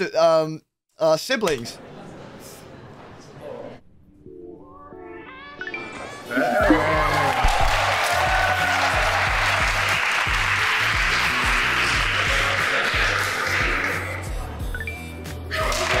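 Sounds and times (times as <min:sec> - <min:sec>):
group applause: 0:06.3 - 0:14.4, 0:15.5 - 0:16.0
background music with bass line: 0:06.6 - 0:16.0.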